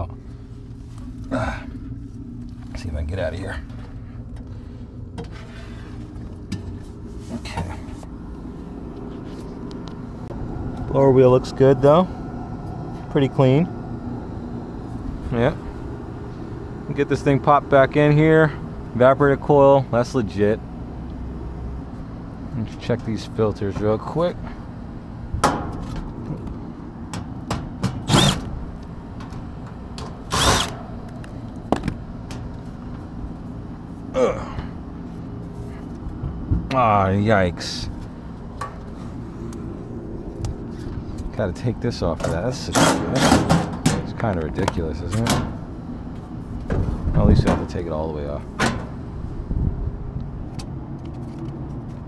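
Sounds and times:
low mechanical hum: 0.0s - 52.0s
cordless drill whirring: 28.0s - 28.5s, 30.3s - 30.8s.

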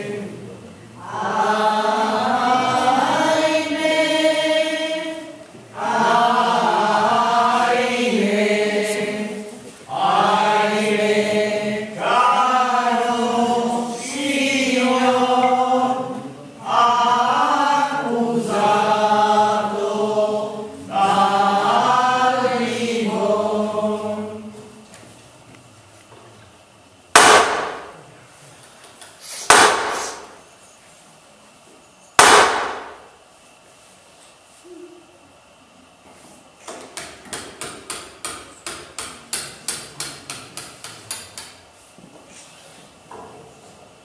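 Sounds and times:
group singing a slow chant: 0.0s - 25.0s
hammer blows on a nail: 29.4s - 30.4s.

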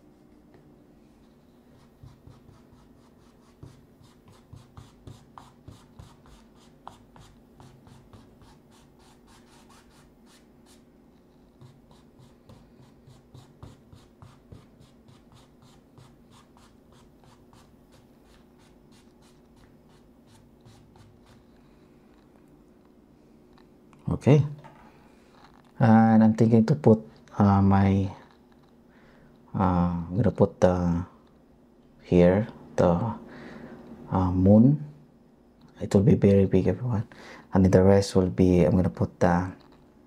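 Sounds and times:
paintbrush scrubbing on canvas: 1.3s - 10.9s, 11.5s - 21.5s.

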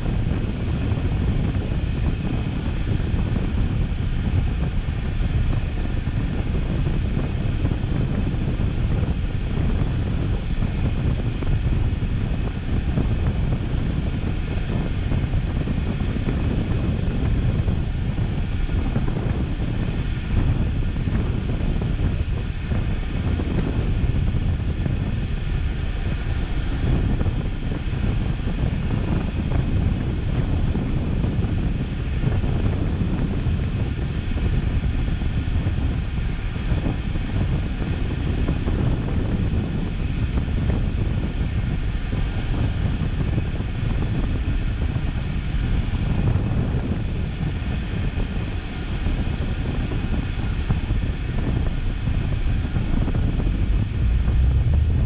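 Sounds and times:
wind noise on microphone: 0.0s - 55.0s
car idling: 53.4s - 55.0s
cross traffic passing: 53.5s - 55.0s.

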